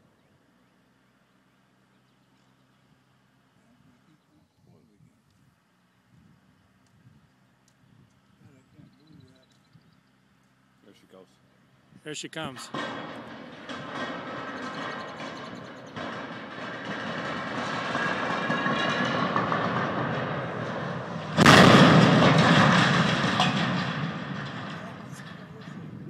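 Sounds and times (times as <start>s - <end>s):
loud metal crash: 12.4s - 26.0s
rumble: 12.6s - 26.0s.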